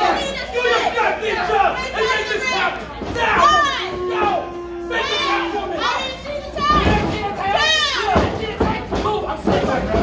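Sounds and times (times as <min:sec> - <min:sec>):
crowd shouting and calling out: 0:00.0 - 0:10.0.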